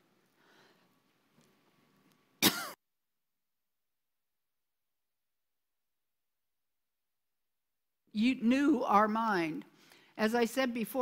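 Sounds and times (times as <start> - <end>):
woman coughing: 2.4 - 2.8.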